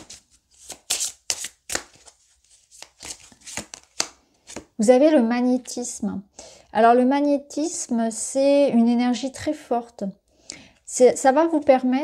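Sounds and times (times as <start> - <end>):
cards being shuffled: 0.0 - 4.7.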